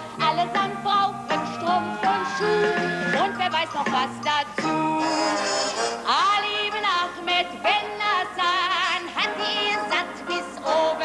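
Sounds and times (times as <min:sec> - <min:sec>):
band accompaniment: 0:00.0 - 0:06.1.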